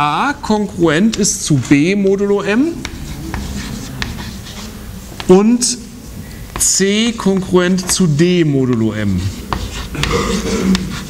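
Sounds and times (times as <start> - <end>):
chalk scratching on blackboard: 0.9 - 11.0
chalk tapping on board: 1.1 - 1.4, 2.5 - 5.7, 6.5 - 11.0.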